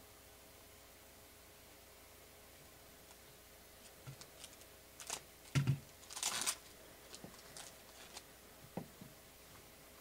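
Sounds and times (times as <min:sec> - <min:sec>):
cards sliding rustle: 0:06.0 - 0:08.3.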